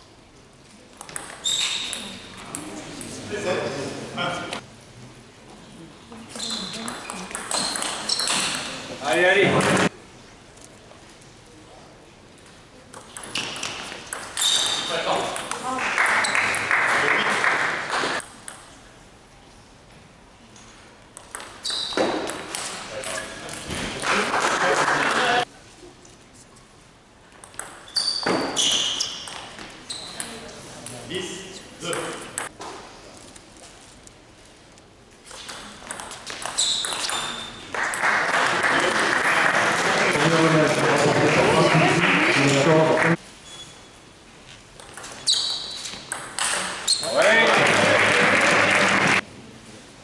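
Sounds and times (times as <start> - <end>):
people shouting and cheering: 47.0 - 49.2.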